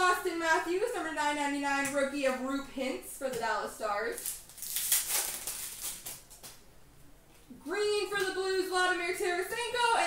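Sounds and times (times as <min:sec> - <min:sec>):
trading cards rustling: 0:04.2 - 0:06.5.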